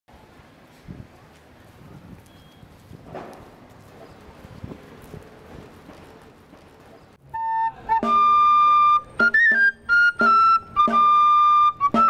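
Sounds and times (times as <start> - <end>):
faint street background noise: 0.1 - 12.0
footsteps on stone paving: 0.6 - 7.2.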